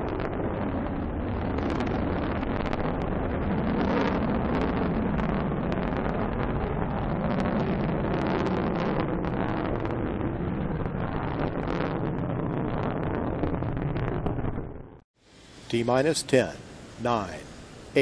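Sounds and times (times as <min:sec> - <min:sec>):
rocket engine rumbling and crackling: 0:00.0 - 0:18.0.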